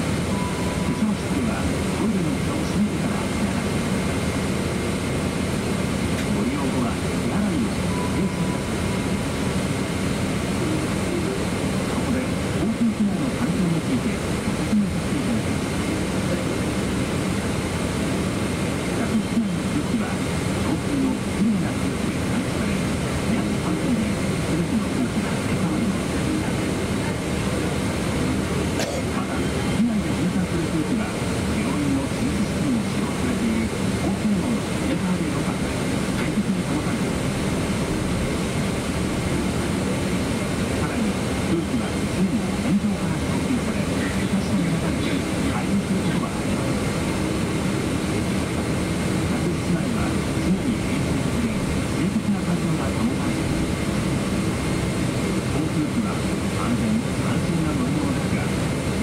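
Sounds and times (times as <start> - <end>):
airliner cabin hum: 0.0 - 59.0
murmur of passenger voices: 0.0 - 59.0.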